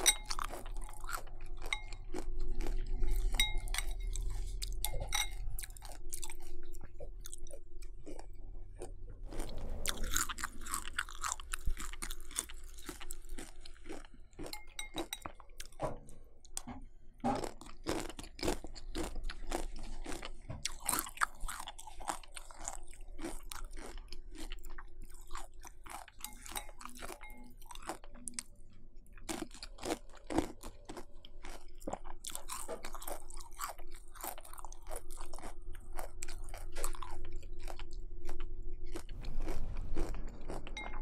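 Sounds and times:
crunchy cereal chewing: 0.0 - 5.0, 5.6 - 15.8, 17.4 - 28.5, 29.1 - 41.0.

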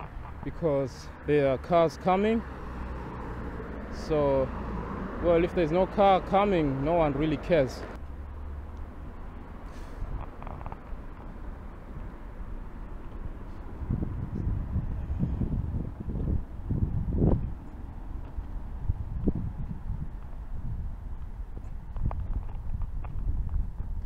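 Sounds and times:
footsteps on pavement: 0.0 - 0.6, 7.8 - 14.7, 15.8 - 24.0
street traffic rumble: 0.0 - 24.0.

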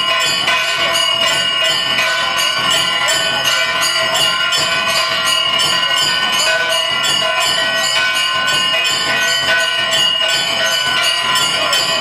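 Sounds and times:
metal bells ringing rapidly: 0.0 - 12.0.

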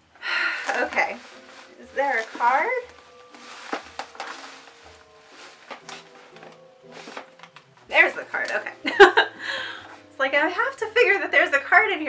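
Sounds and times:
soft steady music: 0.0 - 12.0
paper and packaging knocks: 0.6 - 8.7
hands rummaging in cardboard box: 0.6 - 9.0.

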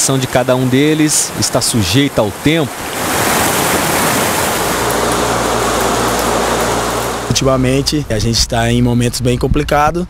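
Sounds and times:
river rushing over rapids: 0.0 - 7.5.

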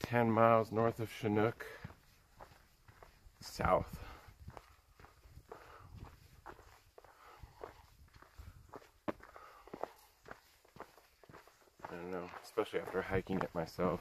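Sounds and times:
footsteps on dirt trail: 0.0 - 14.0.

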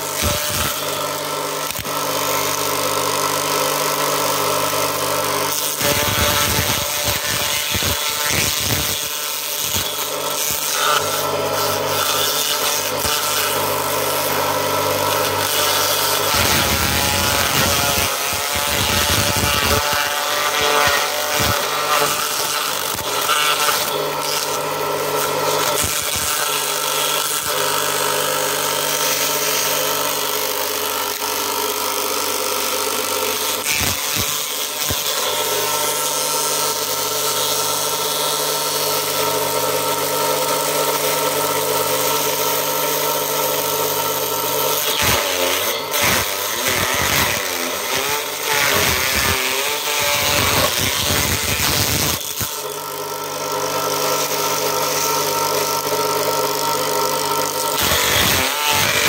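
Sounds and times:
corn stalks being shredded: 0.0 - 59.0
electric motor humming: 0.0 - 59.0.

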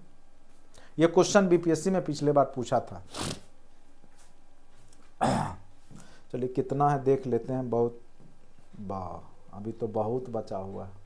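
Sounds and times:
man clearing his throat: 5.2 - 5.7.

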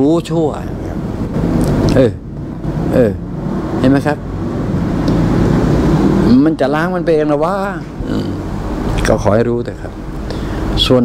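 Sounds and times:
vehicle motor rumbling: 0.0 - 11.0
person speaking: 6.2 - 9.4.

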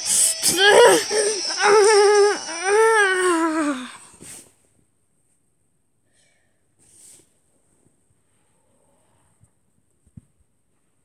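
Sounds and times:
person wailing: 0.0 - 4.1.

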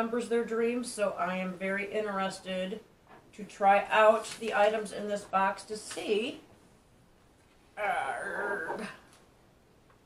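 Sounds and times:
whining vocal sound: 7.8 - 9.1.

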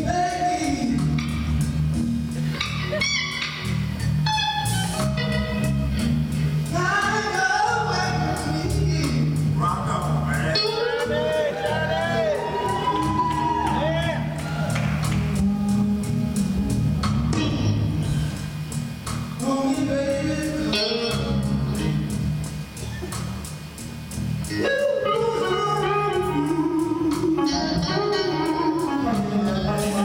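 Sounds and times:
electric blues band playing: 0.0 - 30.0
electric guitar lead lines: 0.0 - 30.0
steady cymbal beat: 0.0 - 30.0.

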